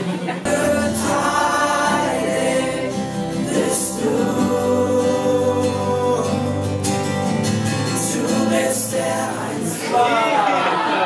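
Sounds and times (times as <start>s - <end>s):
group singing worship song: 0.4s - 11.0s.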